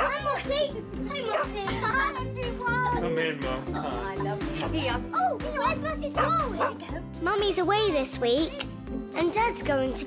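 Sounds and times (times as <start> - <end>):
children calling and squealing: 0.0 - 10.0
upbeat music with bass: 0.0 - 10.0.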